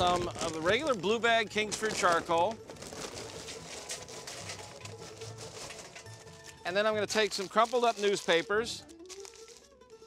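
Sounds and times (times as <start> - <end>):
charcoal briquets clattering into metal: 0.0 - 10.0.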